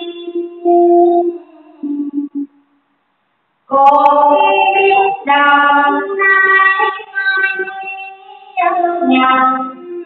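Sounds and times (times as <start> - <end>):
high voice singing over music: 3.7 - 10.0.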